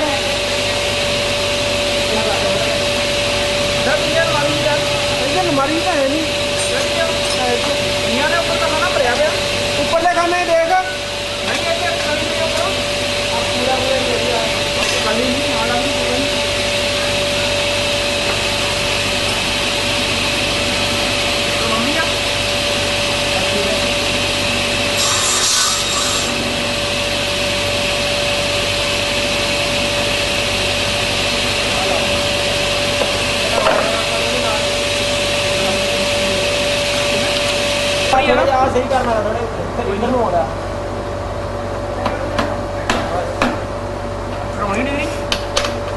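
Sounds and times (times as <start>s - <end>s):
table saw running: 0.0s - 39.3s.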